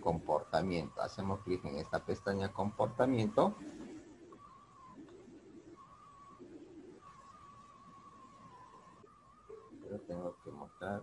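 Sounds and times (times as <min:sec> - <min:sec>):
faint bird calls: 0:00.0 - 0:11.0.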